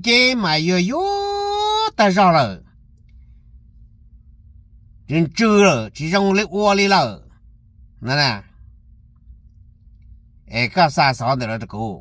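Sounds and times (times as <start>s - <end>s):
man speaking: 0.0s - 2.7s, 5.1s - 7.3s, 8.0s - 8.5s, 10.5s - 12.0s
faint low hum: 0.0s - 12.0s.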